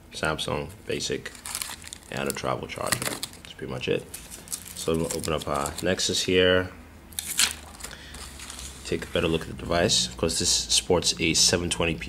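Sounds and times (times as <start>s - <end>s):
plastic film crinkling: 0.9s - 6.1s, 7.2s - 9.4s.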